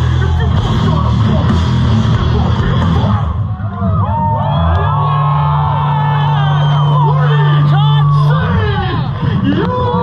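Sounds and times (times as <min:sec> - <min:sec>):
crowd cheering and yelling: 0:00.0 - 0:10.0.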